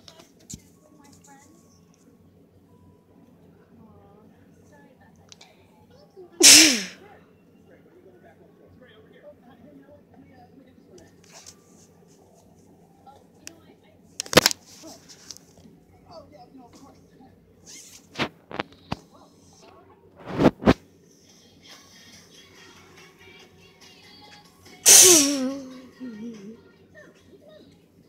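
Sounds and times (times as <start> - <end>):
film music from television: 0.0 - 28.0
loud burst: 6.4 - 7.0, 24.9 - 25.4.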